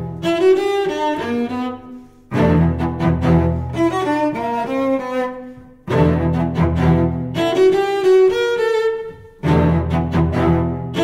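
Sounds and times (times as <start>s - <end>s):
low cello parts: 0.0s - 11.0s.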